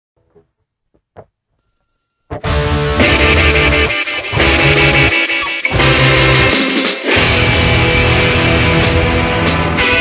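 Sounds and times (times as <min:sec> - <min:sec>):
distorted electric guitar riff: 0:02.3 - 0:10.0.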